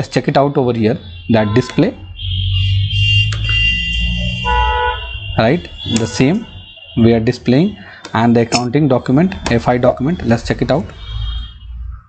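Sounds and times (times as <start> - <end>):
speech: 0.0 - 2.0, 5.4 - 10.9
high-pitched steady tone: 1.0 - 12.0.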